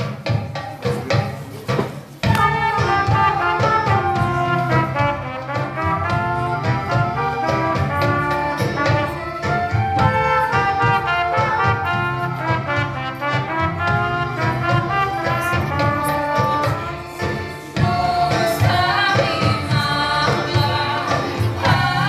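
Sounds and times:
trumpets and recorders playing: 2.3s - 17.7s.

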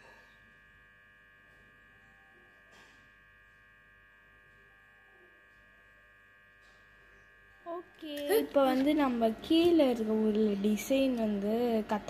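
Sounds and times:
faint electrical whine: 0.0s - 12.0s.

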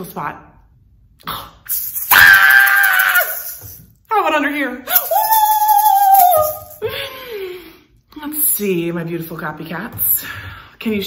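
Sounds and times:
hand shaker rattling: 1.7s - 4.0s, 4.9s - 7.0s
woman's high wordless ooh: 4.9s - 6.9s.

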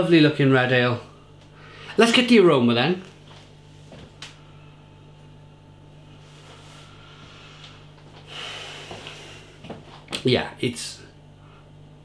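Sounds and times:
low steady hum: 0.0s - 12.0s
man sniffing: 6.5s - 9.6s.

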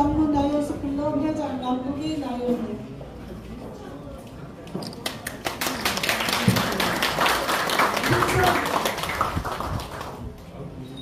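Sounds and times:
audience applauding: 5.0s - 10.3s.

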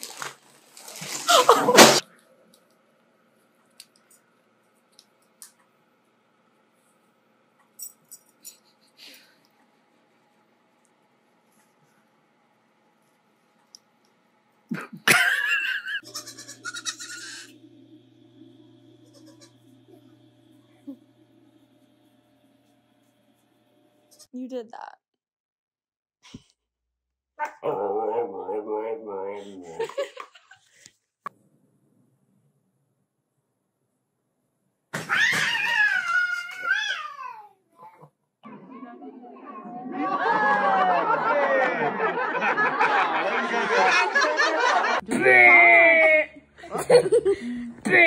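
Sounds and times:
steady low hum: 1.7s - 24.3s
young goat bleating: 16.0s - 17.5s, 19.0s - 19.5s.

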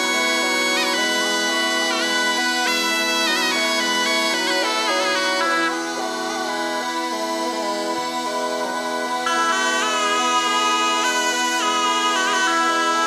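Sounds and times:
bagpipe melody over drone: 0.0s - 13.0s.

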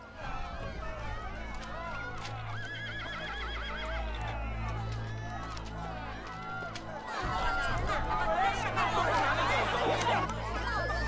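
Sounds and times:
crowd cheering and shouting: 0.0s - 11.0s
horse whinnying: 2.6s - 3.9s.

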